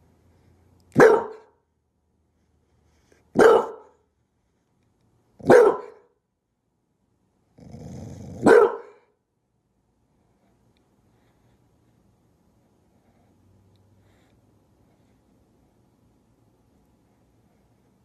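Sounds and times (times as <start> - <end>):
dog barking: 0.9 - 1.6, 3.3 - 4.0, 5.4 - 6.2, 8.3 - 9.1
dog growling: 7.6 - 8.5.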